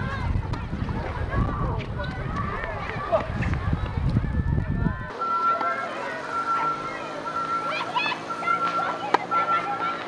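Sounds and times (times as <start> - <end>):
wind on microphone: 0.0 - 5.1
indistinct voices chattering: 0.0 - 10.0.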